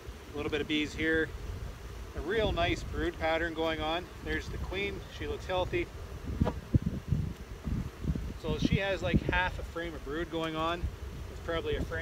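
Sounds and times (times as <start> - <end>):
wind buffeting microphone: 4.3 - 9.9, 10.6 - 12.0.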